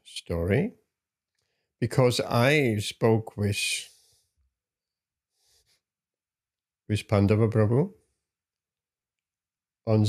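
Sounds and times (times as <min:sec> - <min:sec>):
man speaking: 0:00.0 - 0:00.8, 0:01.8 - 0:04.0, 0:06.9 - 0:08.0.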